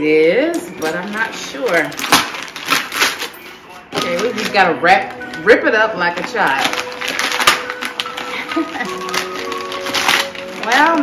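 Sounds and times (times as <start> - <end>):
background music: 0.0 - 11.0
wrapping paper tearing and crumpling: 1.0 - 11.0.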